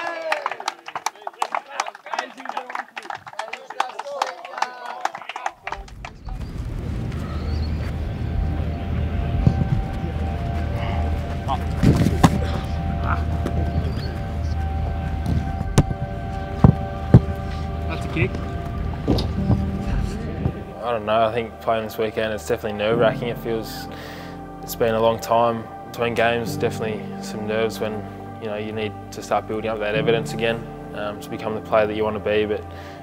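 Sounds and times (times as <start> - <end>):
man speaking to group: 1.1 - 5.8, 20.8 - 23.9, 24.7 - 32.7
background music with low bass: 8.1 - 33.0.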